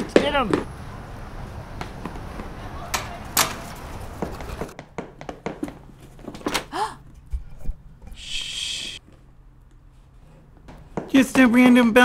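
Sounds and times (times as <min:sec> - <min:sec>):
footsteps: 0:01.7 - 0:06.5
door opening: 0:02.8 - 0:04.8
short vocal sound: 0:08.1 - 0:09.0.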